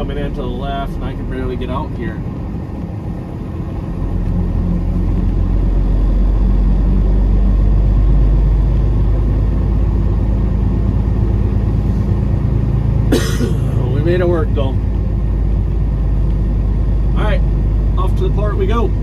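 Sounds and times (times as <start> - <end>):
truck diesel engine rumble: 0.0 - 19.0.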